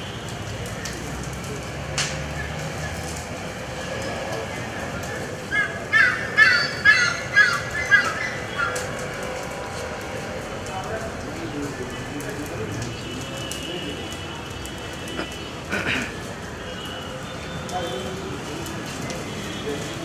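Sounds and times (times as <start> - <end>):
crow cawing: 5.5 - 8.9.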